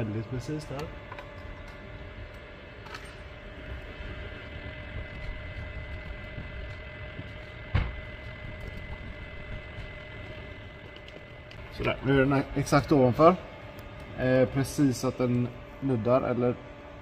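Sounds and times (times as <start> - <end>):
faint whining tones: 0.0 - 17.0
low mechanical hum: 0.0 - 17.0.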